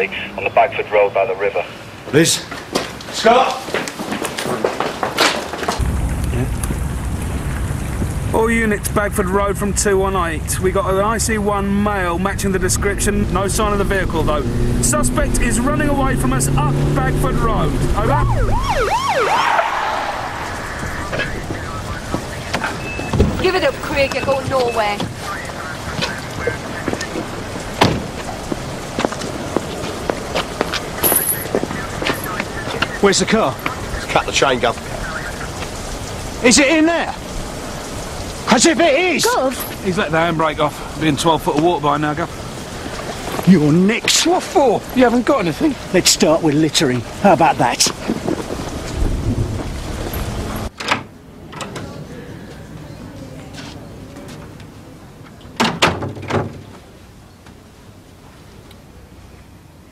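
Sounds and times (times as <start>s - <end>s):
hissing outdoor background noise: 0.0s - 59.9s.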